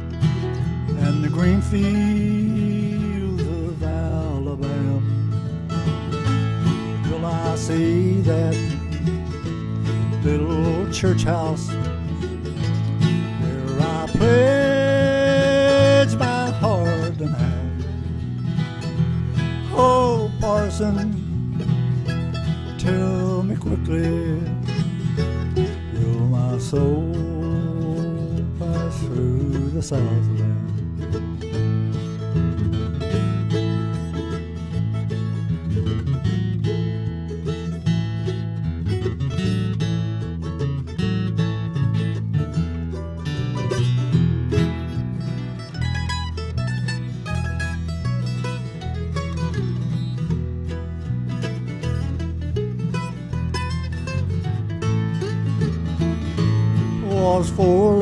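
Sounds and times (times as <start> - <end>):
electric bass: 0.0 - 58.0
lead melody with bent notes: 0.0 - 58.0
strummed acoustic guitar: 0.0 - 58.0.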